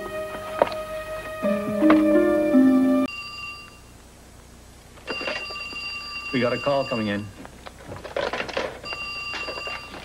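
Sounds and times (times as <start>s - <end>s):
telephone ringing: 5.1s - 7.3s, 8.8s - 10.0s.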